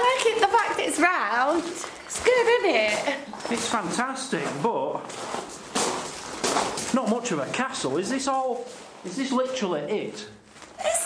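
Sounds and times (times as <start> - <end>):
footsteps crunching on gravel: 0.0 - 9.2.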